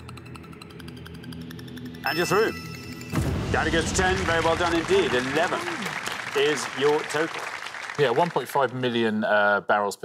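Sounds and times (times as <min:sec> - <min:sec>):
low droning music: 0:00.0 - 0:07.0.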